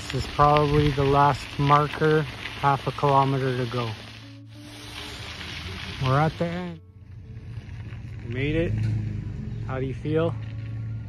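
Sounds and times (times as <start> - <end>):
bicycle tyres on gravel: 0.0 - 11.0.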